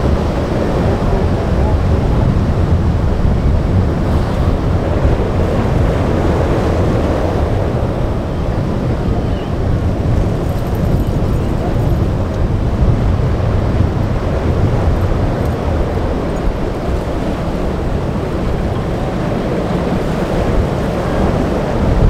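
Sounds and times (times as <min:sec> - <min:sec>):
waves breaking: 0:00.0 - 0:22.0
wind rumble on microphone: 0:00.0 - 0:22.0.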